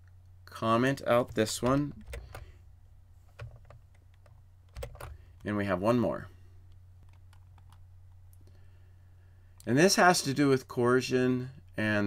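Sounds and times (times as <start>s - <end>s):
faint low hum: 0.0s - 12.0s
keyboard keystrokes: 1.3s - 2.5s, 3.3s - 5.2s, 7.0s - 7.8s.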